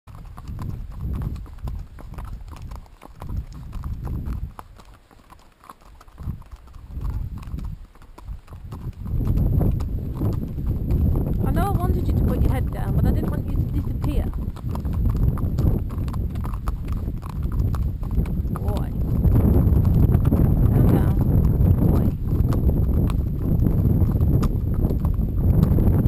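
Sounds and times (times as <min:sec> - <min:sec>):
wind on microphone: 0:00.1 - 0:04.8, 0:06.2 - 0:26.0
horse hooves on gravel: 0:00.1 - 0:26.0.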